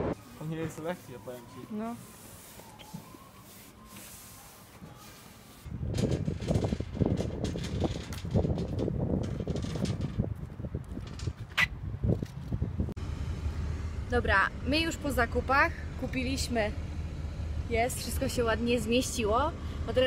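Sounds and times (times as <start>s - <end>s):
metal trolley rattling over bricks: 5.8s - 11.6s.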